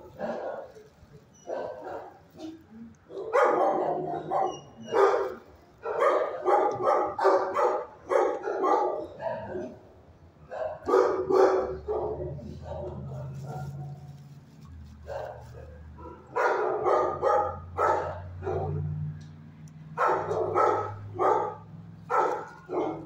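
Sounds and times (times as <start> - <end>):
dogs barking: 0.0 - 0.8, 1.4 - 14.0, 15.0 - 19.0, 19.9 - 23.0.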